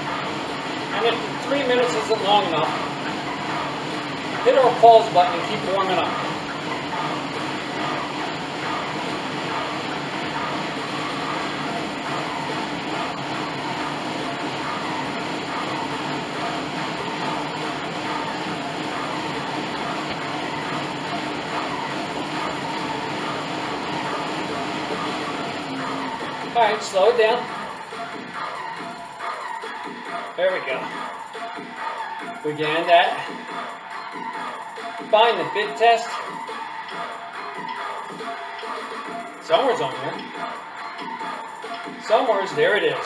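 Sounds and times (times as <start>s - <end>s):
resistance fan whirring: 0.0s - 43.0s.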